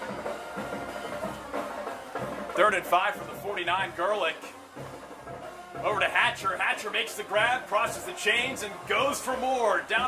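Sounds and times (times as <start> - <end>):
band music with drums: 0.0 - 10.0.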